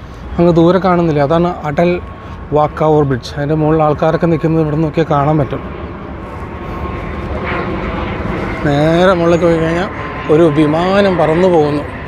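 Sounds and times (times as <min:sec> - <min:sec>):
airplane engine flying overhead: 0:00.0 - 0:12.0.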